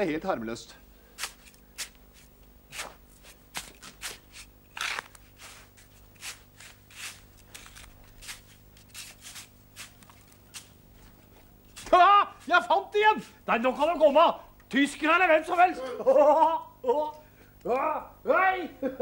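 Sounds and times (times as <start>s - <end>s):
hands scraping in sand: 1.2s - 13.3s.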